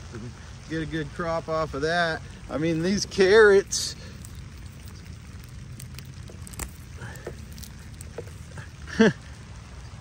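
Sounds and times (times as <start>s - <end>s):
rain hiss: 0.0s - 10.0s
raindrop ticks: 1.6s - 9.3s.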